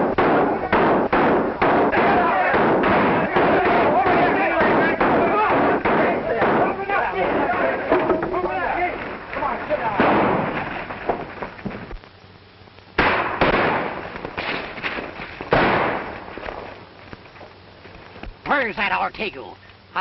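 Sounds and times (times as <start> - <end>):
gunshots with long echo: 0.0 - 8.0, 9.8 - 10.8, 13.0 - 14.7, 15.5 - 16.3
people shouting: 0.0 - 10.0.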